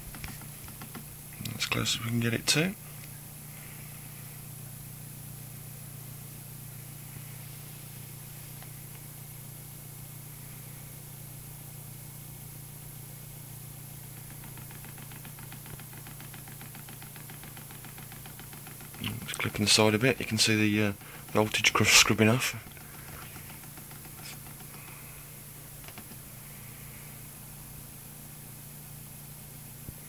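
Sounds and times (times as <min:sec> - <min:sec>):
motor running with low hum: 0:00.0 - 0:30.0
fast light ticking: 0:14.1 - 0:25.1.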